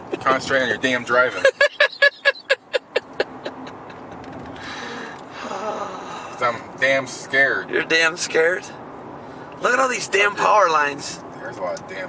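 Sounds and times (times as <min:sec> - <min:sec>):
car road and engine noise: 0:00.0 - 0:12.0
man laughing: 0:01.3 - 0:04.3.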